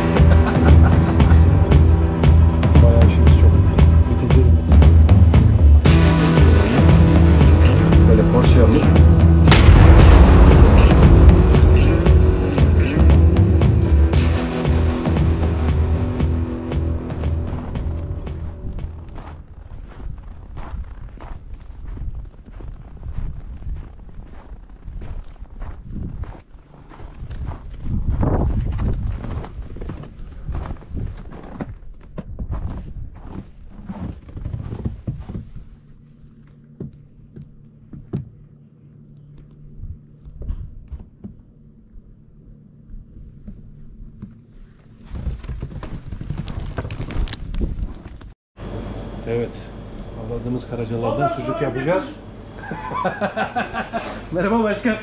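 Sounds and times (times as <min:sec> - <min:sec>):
music: 0:00.0 - 0:19.3
steady low hum: 0:00.0 - 0:55.0
burst of noise: 0:09.3 - 0:16.2
footsteps crunching through snow: 0:16.3 - 0:36.7.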